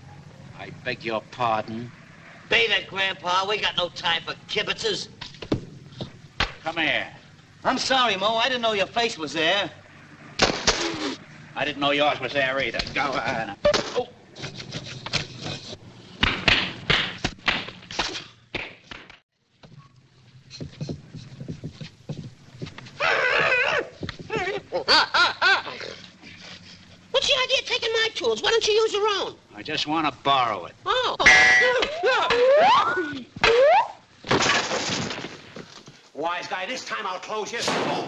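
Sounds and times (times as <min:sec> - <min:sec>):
stiff brush scraping: 0:14.3 - 0:16.0, 0:19.7 - 0:24.7
man yelping: 0:30.8 - 0:34.0.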